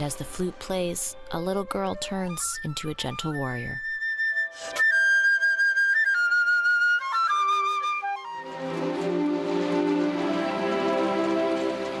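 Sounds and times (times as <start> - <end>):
solo flute melody: 1.7 - 12.0
low orchestral notes: 8.1 - 12.0.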